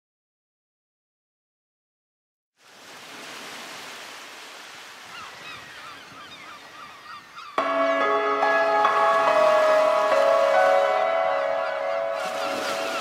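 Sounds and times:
sea surf: 0:02.6 - 0:13.0
bird cries: 0:05.0 - 0:13.0
music with bell-like tones: 0:07.6 - 0:13.0.

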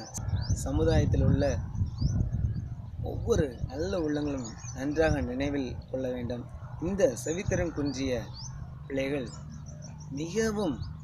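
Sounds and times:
wind rumble on microphone: 0:00.0 - 0:11.0
man speaking: 0:10.1 - 0:10.9.

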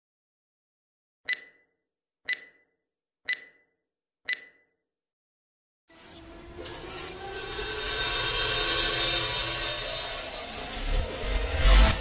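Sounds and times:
short high beeps: 0:01.3 - 0:01.7, 0:02.3 - 0:02.6, 0:03.3 - 0:03.7, 0:04.3 - 0:04.7.

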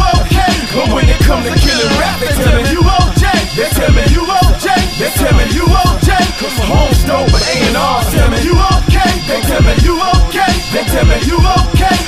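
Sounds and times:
deep kick drum: 0:00.0 - 0:04.6, 0:05.2 - 0:10.3
rapping over a beat: 0:00.0 - 0:12.0.

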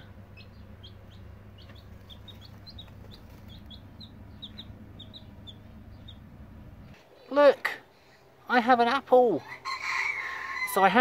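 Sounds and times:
chicks peeping: 0:00.0 - 0:07.4
low steady hum: 0:00.0 - 0:10.6.

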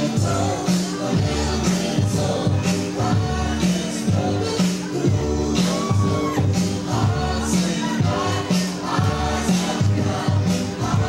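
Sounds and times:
dance music with singing: 0:00.0 - 0:11.0.

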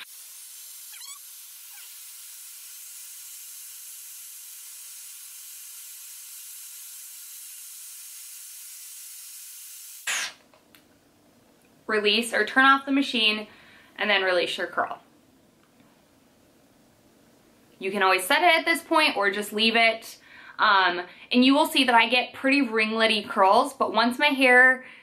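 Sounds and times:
hair styler blowing air: 0:00.0 - 0:10.4.

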